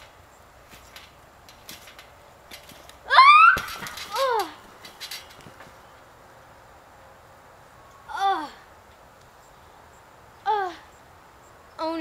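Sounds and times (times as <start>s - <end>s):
trampoline taps and creaks: 0.0s - 6.0s
girl yelping: 3.1s - 4.6s, 8.1s - 8.6s, 10.5s - 10.9s.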